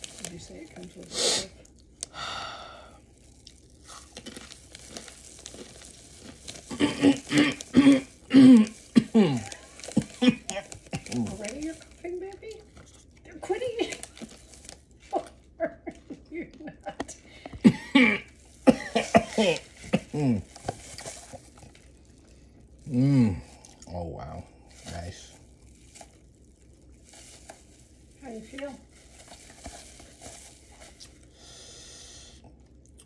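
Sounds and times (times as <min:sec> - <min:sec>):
man's strained mumbled sounds: 0:06.7 - 0:09.6, 0:20.1 - 0:20.5, 0:22.9 - 0:23.6
man coughing: 0:06.7 - 0:11.3, 0:17.6 - 0:20.5.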